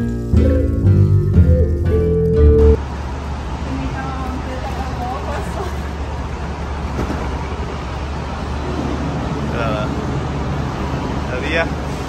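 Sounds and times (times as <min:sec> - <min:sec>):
traffic and engine rumble: 0:00.0 - 0:12.0.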